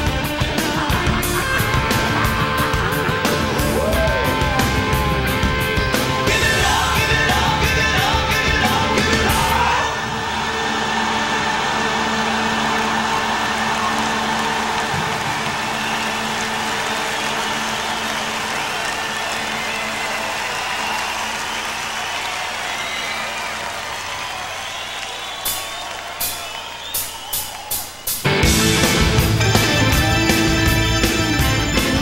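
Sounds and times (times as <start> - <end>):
stadium crowd cheering: 0.0 - 32.0.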